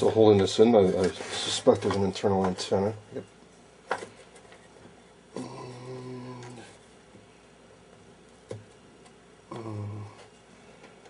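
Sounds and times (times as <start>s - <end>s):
man humming mmm: 5.4s - 6.8s, 9.5s - 10.4s.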